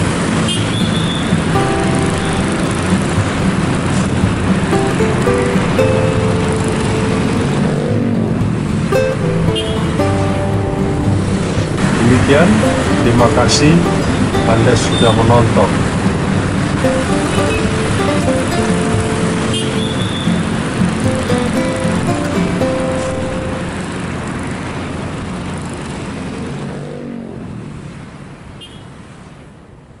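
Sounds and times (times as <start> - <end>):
street traffic noise: 0.0 - 30.0
background music: 1.4 - 24.2.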